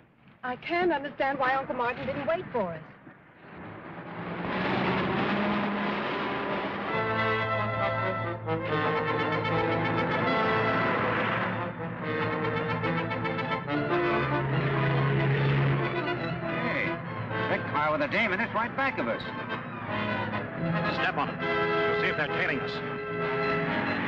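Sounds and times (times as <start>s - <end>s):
orchestral music with brass chords: 3.5s - 24.0s.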